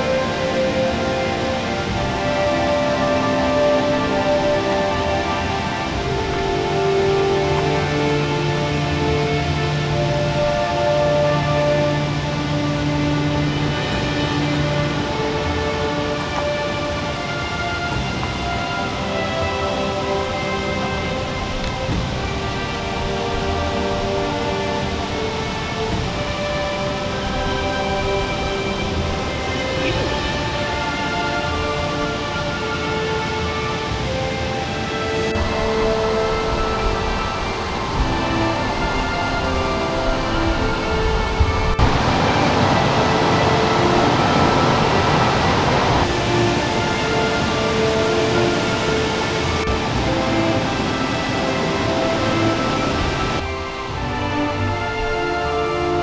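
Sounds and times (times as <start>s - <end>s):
background music with held notes: 0.0s - 56.0s
running water: 0.0s - 56.0s.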